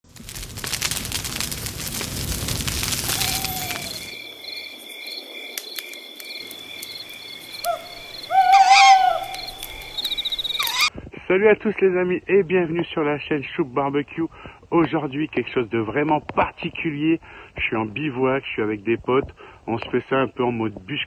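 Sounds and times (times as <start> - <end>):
campfire crackling: 0.0 - 11.0
crickets chirping: 3.0 - 10.9
owl hooting: 7.6 - 10.9.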